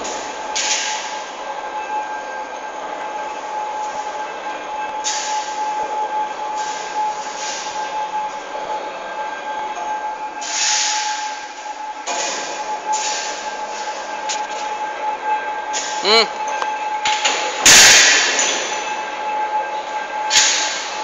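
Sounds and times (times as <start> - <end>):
overhead crane whine and rolling: 0.0 - 21.0.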